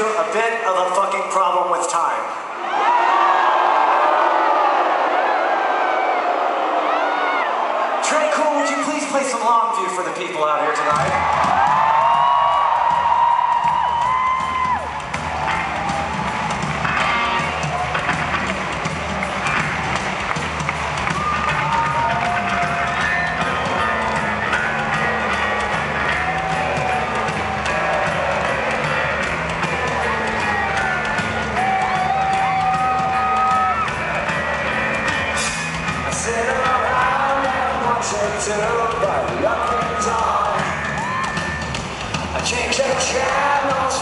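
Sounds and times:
crowd cheering and whooping: 0:02.5 - 0:09.3, 0:10.9 - 0:44.0
drum kit beat: 0:10.9 - 0:44.0
electric bass riff: 0:15.1 - 0:41.2.

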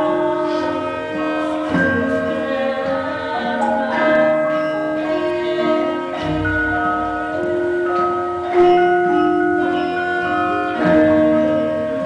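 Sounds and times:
gamelan ensemble playing: 0:00.0 - 0:12.0.

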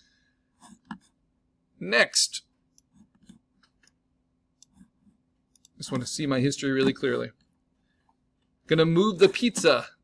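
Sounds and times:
man speaking: 0:01.8 - 0:02.5, 0:05.7 - 0:07.4, 0:08.6 - 0:10.0
computer mouse clicks: 0:04.6 - 0:04.9, 0:05.5 - 0:06.1.

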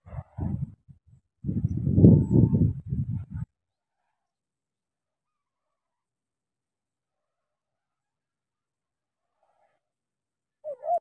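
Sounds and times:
dove cooing: 0:10.6 - 0:11.0.

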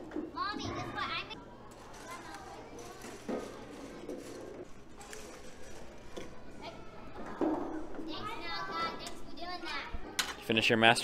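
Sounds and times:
children playing: 0:00.1 - 0:10.5.

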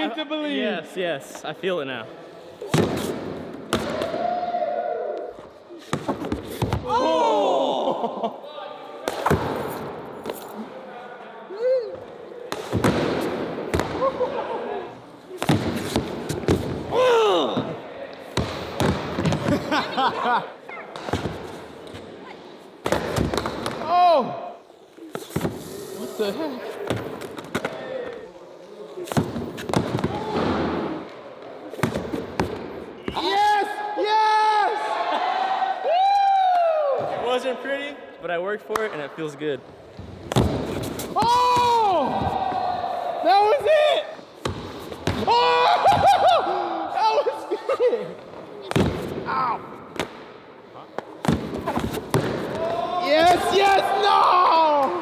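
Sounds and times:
group shouting excitedly: 0:45.3 - 0:47.5, 0:52.6 - 0:55.0.

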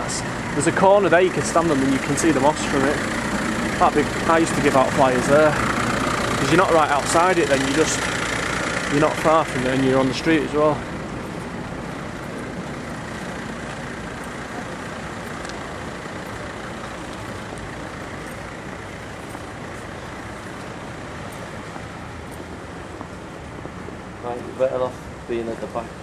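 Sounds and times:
road traffic noise: 0:00.0 - 0:26.0
vehicle running close by: 0:00.0 - 0:26.0.

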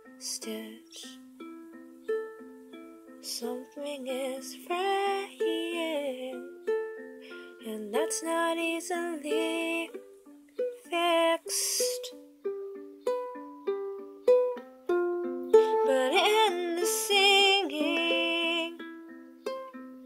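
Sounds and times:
ukulele picking single notes: 0:00.0 - 0:20.0
person singing with vibrato: 0:00.2 - 0:01.2, 0:03.2 - 0:06.5, 0:07.6 - 0:10.1, 0:10.8 - 0:12.2, 0:15.6 - 0:18.8.

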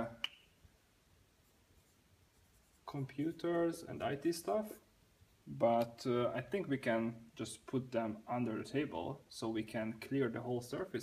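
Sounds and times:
person speaking: 0:01.8 - 0:11.0.

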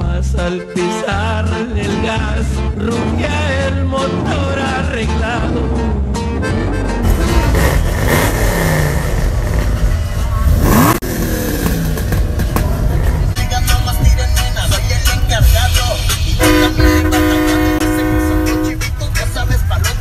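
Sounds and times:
car engines revving: 0:01.6 - 0:20.0
car horn blast: 0:16.4 - 0:19.1.

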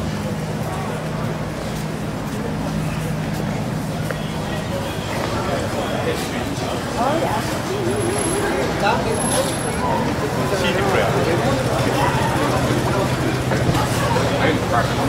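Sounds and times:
crowd chatter: 0:00.0 - 0:15.0
road traffic: 0:00.0 - 0:15.0
vehicle engine hum: 0:00.0 - 0:15.0.

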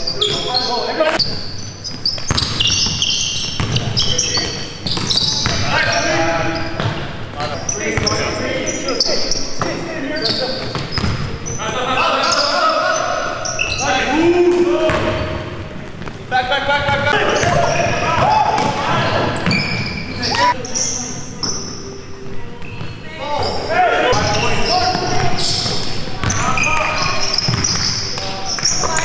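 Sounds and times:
sneaker squeaks: 0:00.0 - 0:29.0
basketball bouncing on court: 0:02.1 - 0:05.7, 0:10.6 - 0:11.3, 0:24.1 - 0:28.0.

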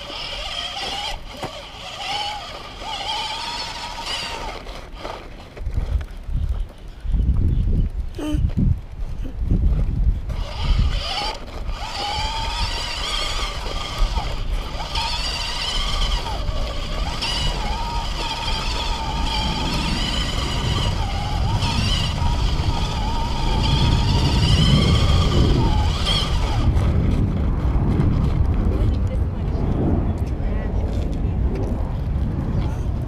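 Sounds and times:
electric motor whine: 0:00.0 - 0:05.3, 0:10.2 - 0:27.2
wind buffeting and tyres on dirt: 0:00.0 - 0:33.0.

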